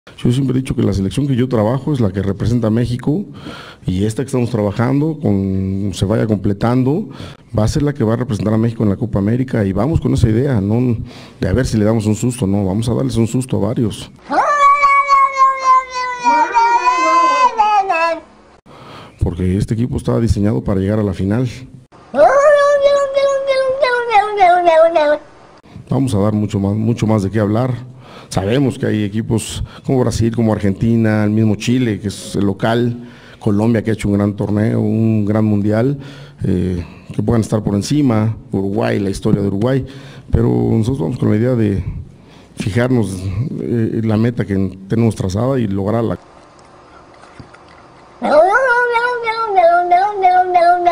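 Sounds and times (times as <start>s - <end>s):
cat meowing: 14.3s - 18.1s, 48.2s - 50.9s.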